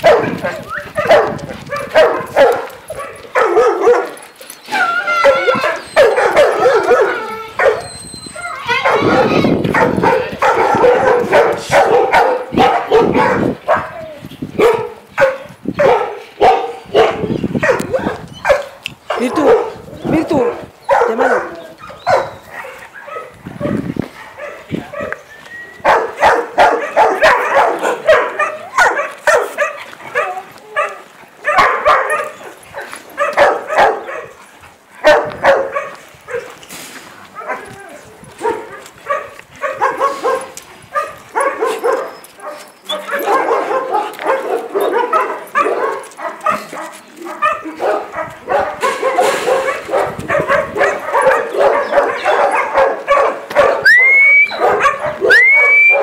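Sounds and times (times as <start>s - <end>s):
dogs yipping and whining: 0.0s - 18.8s, 20.8s - 23.8s, 24.4s - 34.4s, 38.3s - 46.8s, 47.4s - 56.0s
dogs barking: 0.0s - 36.6s, 37.3s - 56.0s.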